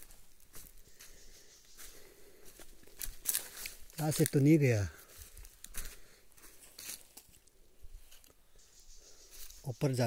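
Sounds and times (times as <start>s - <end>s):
footsteps crunching dry leaves: 0.0s - 8.3s, 9.3s - 9.7s.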